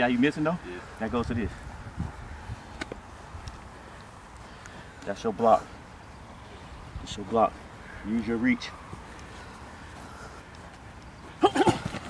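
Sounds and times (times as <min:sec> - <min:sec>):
faint open-air background: 0:00.0 - 0:12.0.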